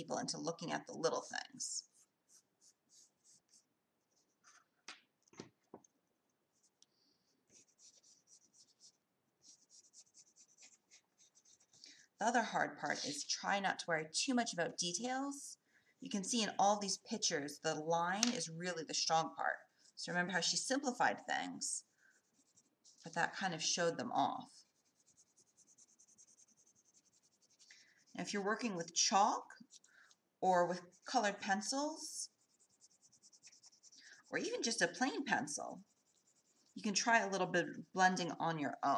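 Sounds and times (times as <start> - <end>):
pencil scratching on paper: 0.7 - 4.7, 6.5 - 13.4, 19.8 - 29.9, 30.7 - 37.4.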